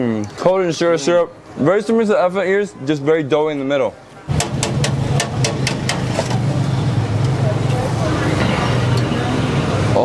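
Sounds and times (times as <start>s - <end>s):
background chatter: 0.0s - 10.0s
traffic hum: 1.4s - 10.0s.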